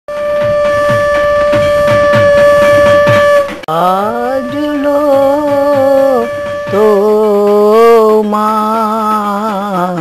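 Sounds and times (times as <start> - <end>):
low drum hits dropping in pitch: 0.1 - 3.7
long held note: 0.1 - 9.2.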